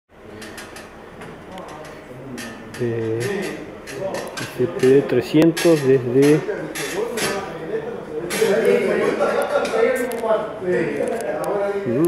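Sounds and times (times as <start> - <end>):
faint voices: 0.2 - 12.0.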